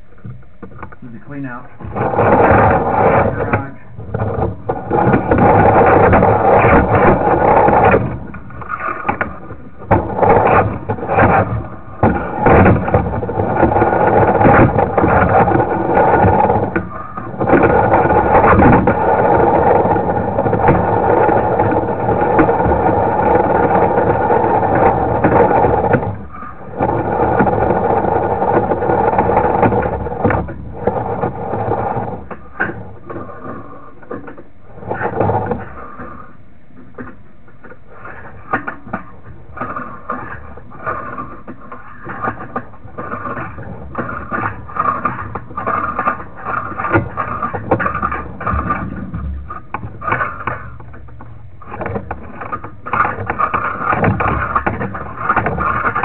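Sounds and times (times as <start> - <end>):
rod scraping and clicking: 0.7 - 36.3, 36.9 - 56.0.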